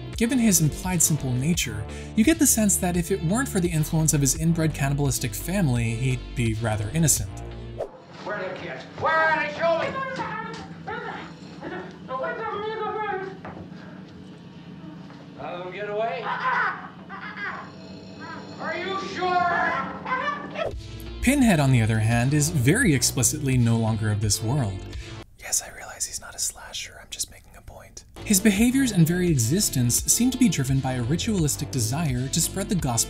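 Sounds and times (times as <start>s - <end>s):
person whispering: 25.4s - 28.0s.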